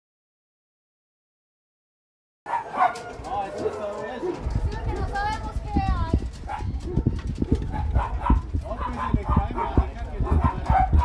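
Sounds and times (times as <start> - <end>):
dogs barking and yelping: 2.5 - 5.6, 6.2 - 11.0
people's voices: 2.7 - 11.0.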